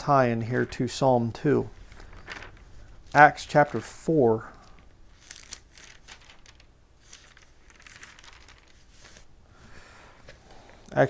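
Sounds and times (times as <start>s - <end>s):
pages turning: 1.7s - 9.3s.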